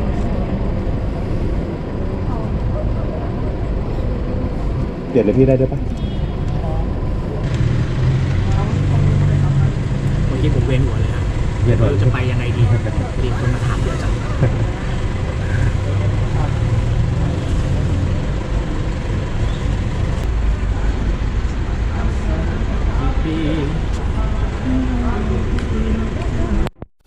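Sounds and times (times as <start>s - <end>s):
traffic rumble: 0.0s - 26.9s
people talking: 1.8s - 4.1s, 5.2s - 5.8s, 6.4s - 7.5s, 8.2s - 18.1s, 20.5s - 26.9s.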